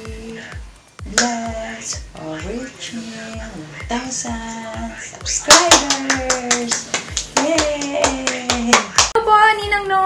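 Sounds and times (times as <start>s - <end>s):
hand clapping steady beat: 0.0s - 2.6s, 3.4s - 9.2s.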